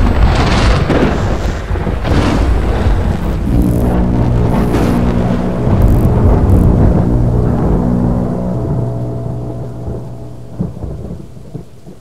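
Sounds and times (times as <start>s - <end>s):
rain: 0.0s - 12.0s
rumbling thunder: 0.0s - 12.0s
sharp thunder crack: 0.0s - 12.0s
held musical chord: 3.4s - 11.6s.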